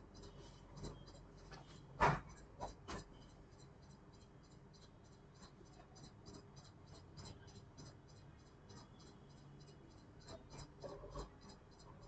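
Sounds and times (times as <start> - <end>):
rapid high-pitched ticking: 0.0 - 12.0.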